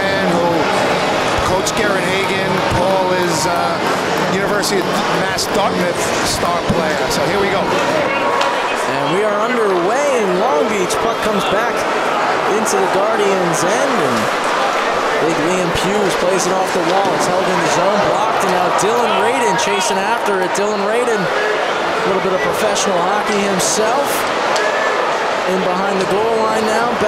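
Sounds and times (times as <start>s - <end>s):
crowd voices: 0.0s - 27.0s
players calling out: 0.0s - 27.0s
hockey sticks and puck clacking: 16.0s - 20.1s.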